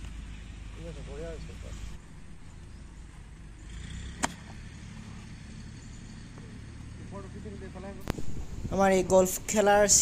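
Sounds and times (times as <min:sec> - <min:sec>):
low outdoor rumble: 0:00.0 - 0:10.0
golf club striking ball: 0:04.1 - 0:04.6.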